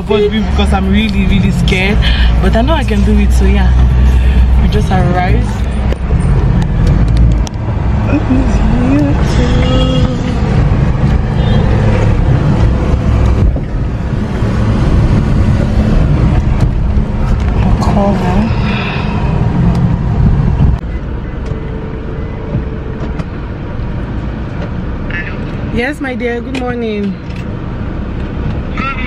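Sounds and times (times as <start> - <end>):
car engine and road rumble: 0.0 - 29.0.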